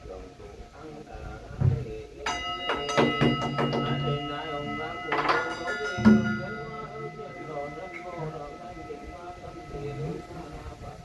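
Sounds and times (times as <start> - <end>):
bell ringing: 2.2 - 11.0.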